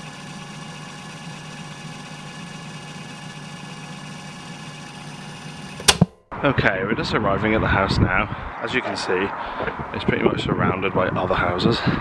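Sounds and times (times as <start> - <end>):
steady mechanical hum: 0.0 - 6.2
sharp click: 5.8 - 6.2.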